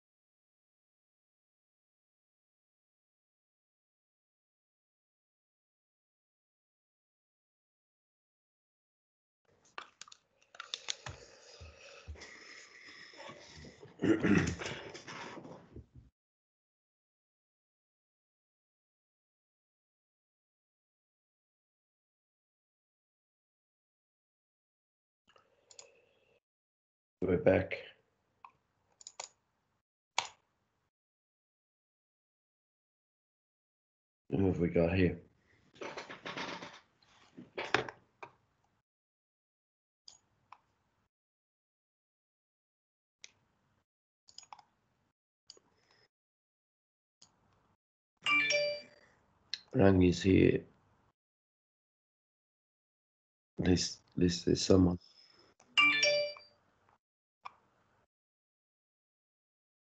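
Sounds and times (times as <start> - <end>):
electronic notification chime: 48.3 - 48.8, 55.8 - 56.4.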